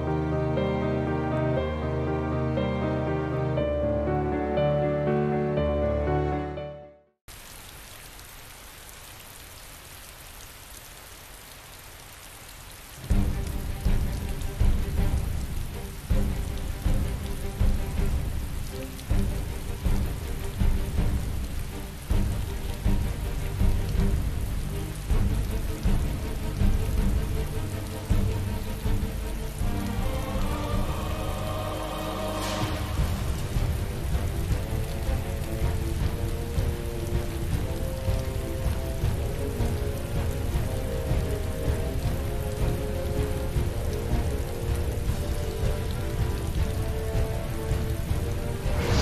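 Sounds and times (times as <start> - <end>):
steady rain hissing: 0.0 - 6.2, 7.2 - 49.0
music with deep rumble: 13.0 - 49.0.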